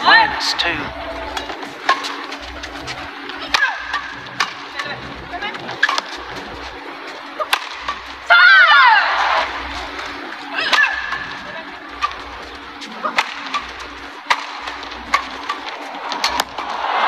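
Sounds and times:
crowd noise: 0:00.0 - 0:17.0
racket striking shuttlecock: 0:01.2 - 0:05.0, 0:05.8 - 0:06.3, 0:07.4 - 0:08.2, 0:09.4 - 0:16.8
loud high cry: 0:08.3 - 0:09.5.

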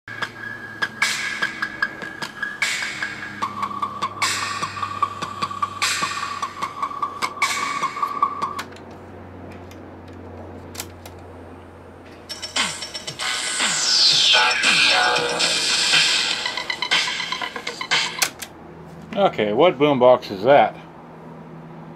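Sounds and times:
electronic music with beeping tones: 0:00.1 - 0:08.7, 0:12.3 - 0:18.2
hissing sweep with falling whistle: 0:13.2 - 0:16.3.

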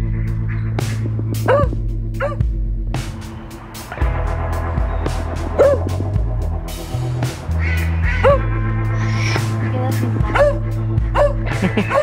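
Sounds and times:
background music low sustained notes: 0:00.0 - 0:12.0
small dog yipping: 0:01.5 - 0:02.4.

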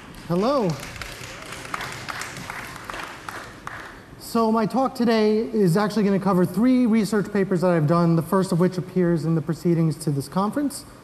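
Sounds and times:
audience applause: 0:00.0 - 0:04.0.

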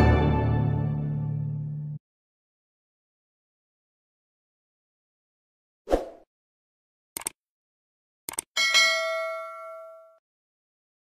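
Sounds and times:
notification bell ding: 0:08.6 - 0:10.2.

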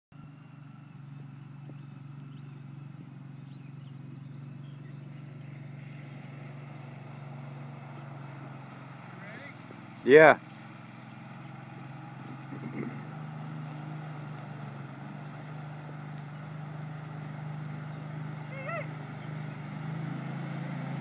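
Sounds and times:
distant vehicle engine droning: 0:00.1 - 0:21.0.

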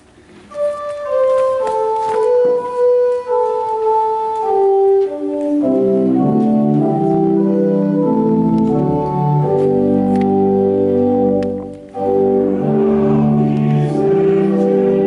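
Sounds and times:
church organ playing a hymn: 0:00.4 - 0:15.0.

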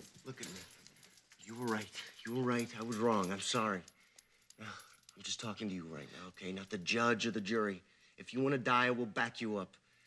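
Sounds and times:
small clicks and rustles: 0:00.0 - 0:06.9
man speaking: 0:00.1 - 0:00.8, 0:01.4 - 0:03.9, 0:04.6 - 0:09.8.

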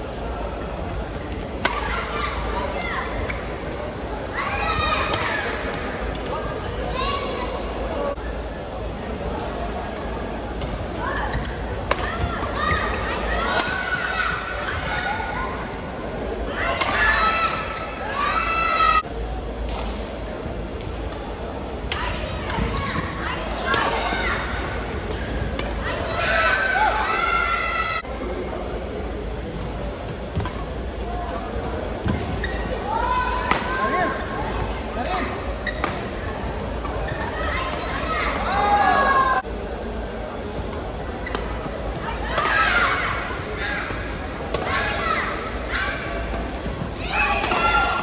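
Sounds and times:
voices and shouts in hall: 0:00.0 - 0:30.0, 0:30.7 - 0:48.0
background chatter: 0:00.0 - 0:48.0
racket hitting shuttlecock: 0:11.8 - 0:12.6, 0:33.5 - 0:33.7, 0:47.4 - 0:47.8.

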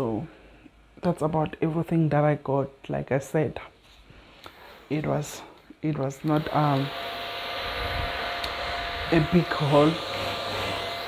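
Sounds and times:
small fan whirring: 0:04.3 - 0:11.0.

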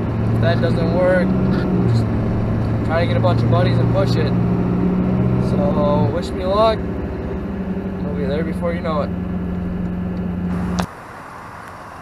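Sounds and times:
outdoor background noise: 0:00.0 - 0:12.0
truck engine and road drone: 0:00.0 - 0:12.0.

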